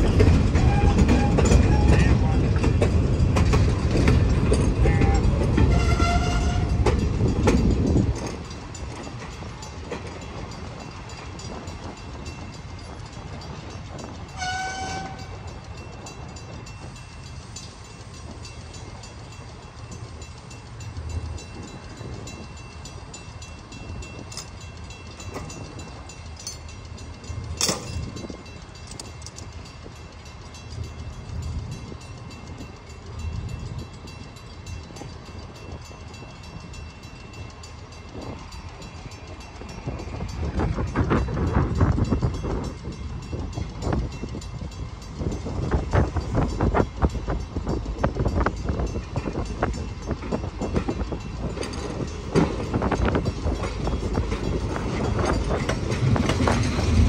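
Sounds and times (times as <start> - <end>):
boxcars rolling rumble: 0.0 - 57.0.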